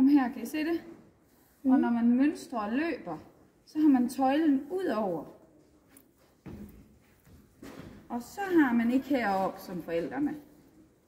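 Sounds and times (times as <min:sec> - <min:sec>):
soft rustling: 0:00.8 - 0:02.3, 0:03.1 - 0:11.0.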